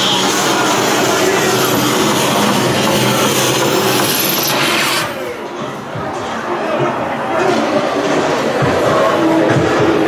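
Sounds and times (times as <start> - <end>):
haunted house sound effects: 0.0 - 10.0.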